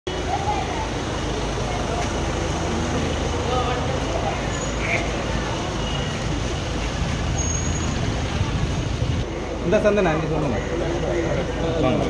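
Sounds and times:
vehicle engines rumbling: 0.0s - 12.0s
people talking: 0.1s - 7.4s, 8.0s - 12.0s.

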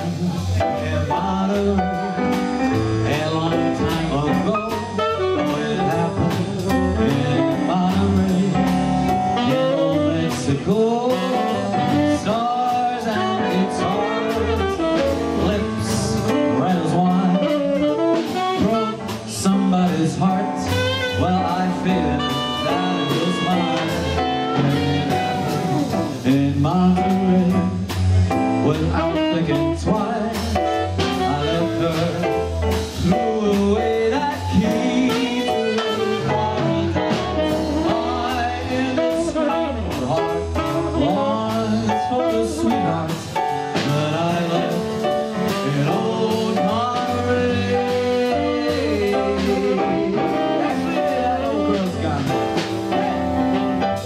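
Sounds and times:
man singing: 0.0s - 53.2s
jazz-blues band playing: 0.0s - 54.0s
saxophone: 0.0s - 54.0s.

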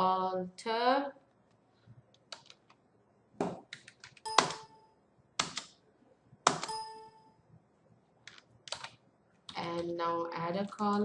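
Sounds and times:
computer keyboard keystrokes: 2.2s - 2.8s, 3.6s - 4.7s, 5.4s - 5.8s, 6.5s - 6.8s, 8.2s - 10.0s.

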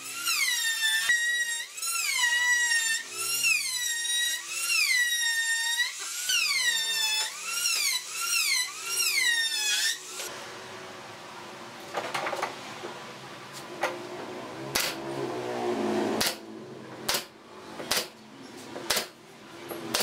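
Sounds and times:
router whining cutting wood: 0.0s - 10.3s.

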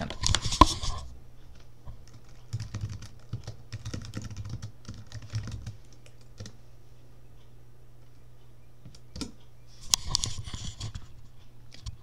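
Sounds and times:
keyboard typing: 2.0s - 6.6s.

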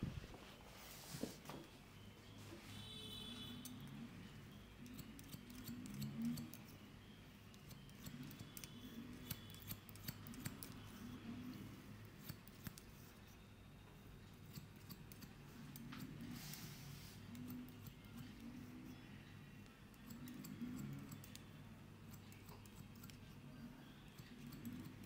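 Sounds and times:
scissors snipping hair: 4.8s - 6.8s, 7.5s - 13.2s, 14.2s - 16.6s, 17.2s - 18.6s, 19.9s - 23.4s, 24.1s - 25.0s.

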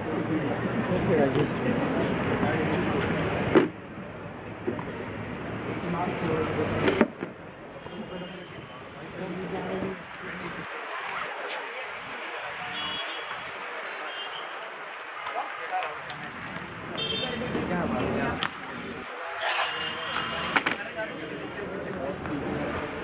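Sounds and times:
people talking outdoors: 0.0s - 23.0s.

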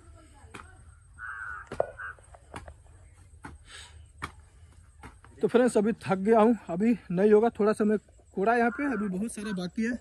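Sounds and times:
crow cawing: 1.1s - 2.4s, 8.6s - 9.7s.

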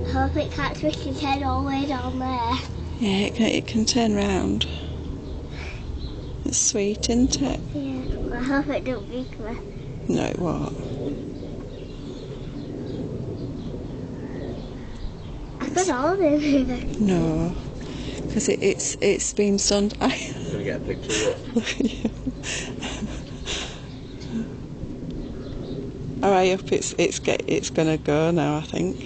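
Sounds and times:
faint outdoor background noise: 0.0s - 29.0s
low steady rumble: 0.0s - 29.0s.

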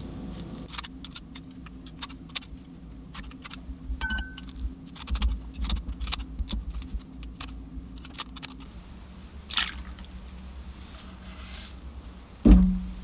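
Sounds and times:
scissors snipping: 3.1s - 8.7s
dull bumps: 12.4s - 13.0s.

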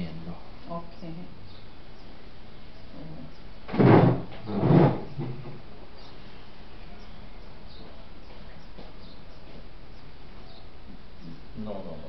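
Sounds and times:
loud bumps near microphone: 3.7s - 5.6s.

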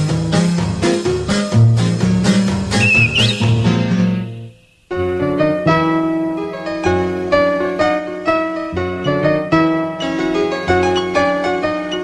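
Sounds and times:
bouncy cartoon music: 2.8s - 4.6s
whistle sliding upward: 2.8s - 5.0s.

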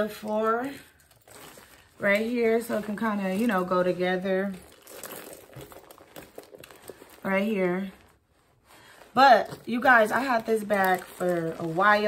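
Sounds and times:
nylon handbag rustling: 0.0s - 12.0s.

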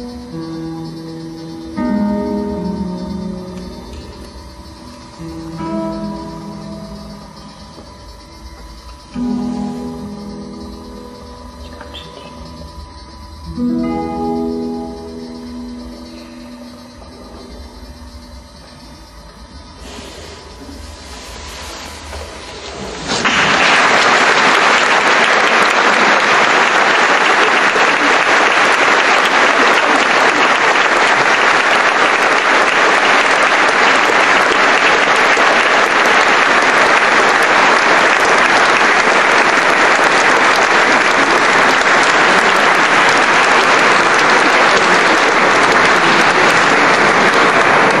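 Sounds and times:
audience applauding: 8.8s - 13.1s, 21.6s - 48.0s.

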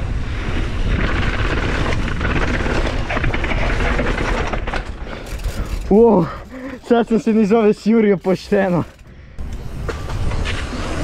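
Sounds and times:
bike tyres rumbling on cobblestones: 0.0s - 11.0s.

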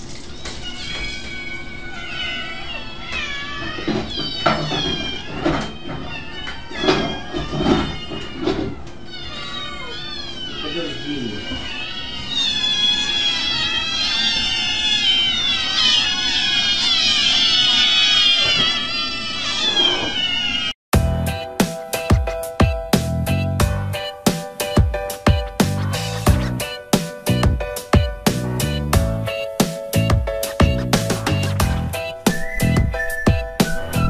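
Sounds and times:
cats meowing: 0.2s - 20.8s, 22.0s - 34.0s.

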